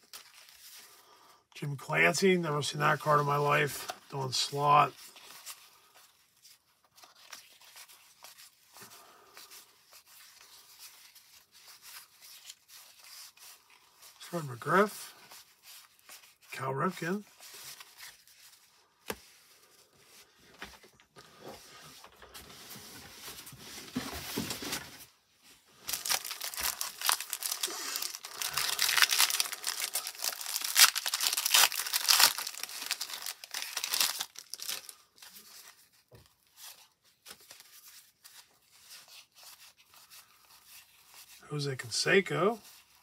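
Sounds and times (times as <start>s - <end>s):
cellophane wrapper crinkling and tearing: 0.0s - 1.0s, 2.9s - 19.4s, 25.7s - 41.4s
cards rustling: 2.2s - 24.9s, 25.8s - 41.4s.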